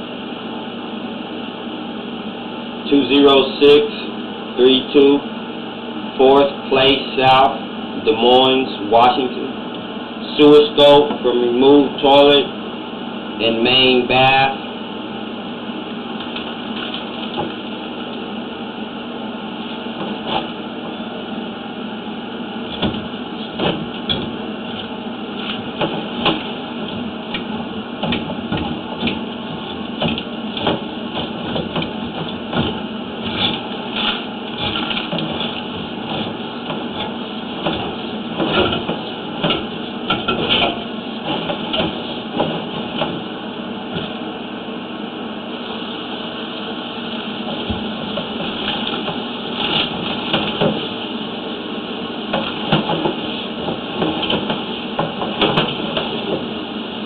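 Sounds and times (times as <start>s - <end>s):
steady noise: 0.0s - 57.0s.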